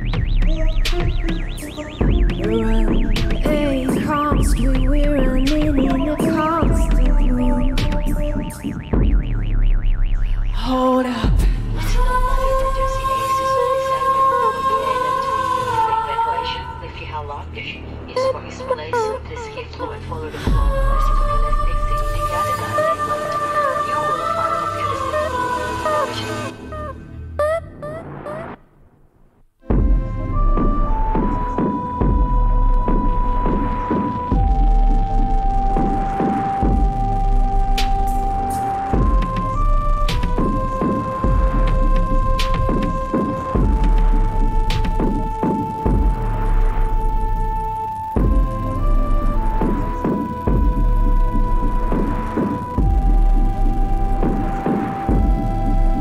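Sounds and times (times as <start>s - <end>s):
held synth lead note: 0.0s - 11.1s, 29.7s - 56.0s
high synth note dropping: 0.0s - 11.1s
steady electronic beat: 0.0s - 12.9s, 29.7s - 56.0s
deep bass drone: 0.0s - 27.8s, 29.6s - 56.0s
deep kick drum hits: 8.8s - 9.6s, 29.7s - 31.3s, 50.5s - 51.0s.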